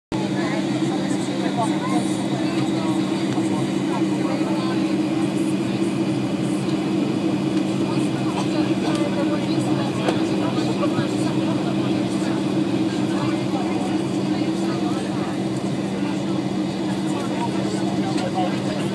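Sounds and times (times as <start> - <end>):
jet engine cabin drone: 0.1 - 18.9.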